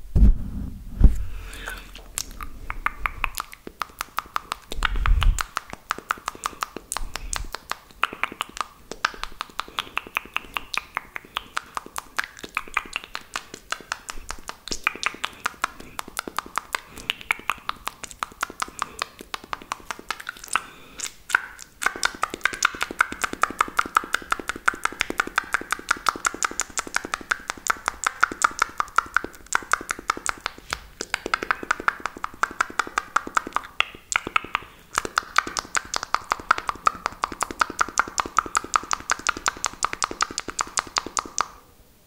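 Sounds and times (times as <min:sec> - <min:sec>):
fast mouth clicks: 0:01.3 - 0:41.6.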